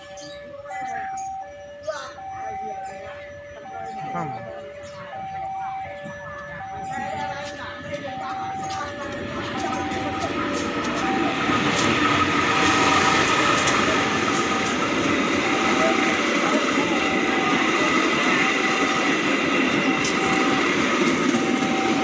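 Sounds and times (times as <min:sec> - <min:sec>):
diesel locomotive passing: 0:00.0 - 0:22.0
level crossing warning tone: 0:00.0 - 0:22.0
train wheels clattering: 0:06.8 - 0:22.0.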